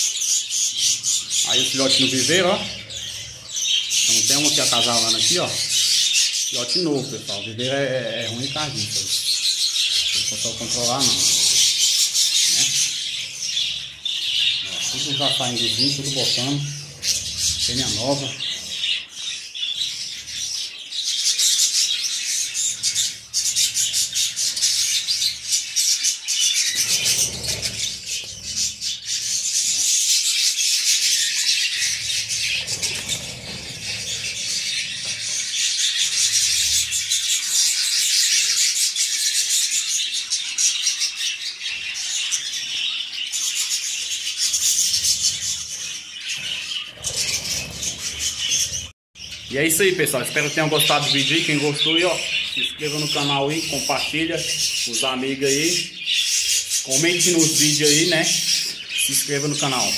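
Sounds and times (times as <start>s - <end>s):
budgerigars chattering: 0.0s - 59.9s.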